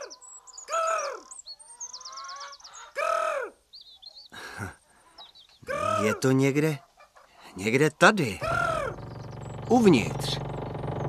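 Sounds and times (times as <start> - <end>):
small birds twittering: 0.0 - 11.0
bird of prey crying: 0.7 - 1.3, 2.3 - 3.6, 5.6 - 6.2, 8.4 - 9.4.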